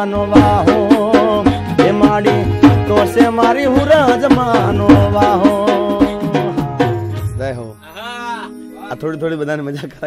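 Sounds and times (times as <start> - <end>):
folk song on harmonium and drums: 0.0 - 9.9.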